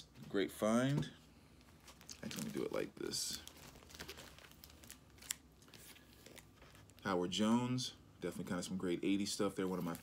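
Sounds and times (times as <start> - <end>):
plastic sleeve crinkling: 1.6 - 7.4, 9.5 - 10.0.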